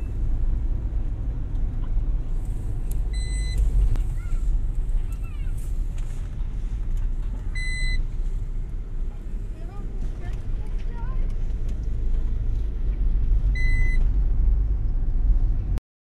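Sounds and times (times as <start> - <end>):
car road and engine rumble: 0.0 - 15.8.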